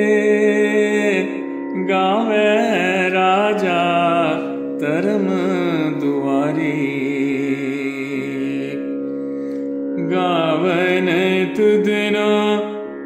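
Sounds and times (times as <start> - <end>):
person singing devotional song: 0.0 - 13.0.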